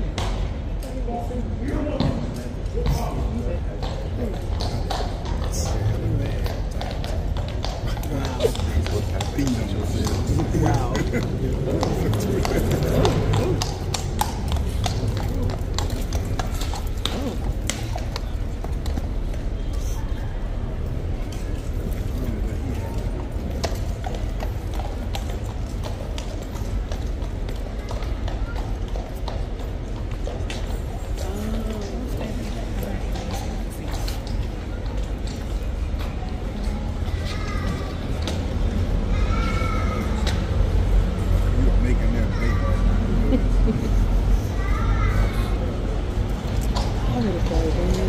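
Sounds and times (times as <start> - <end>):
murmur of people talking: 0.0 - 48.0
horse hooves on hard surface: 2.0 - 19.8, 20.8 - 39.0.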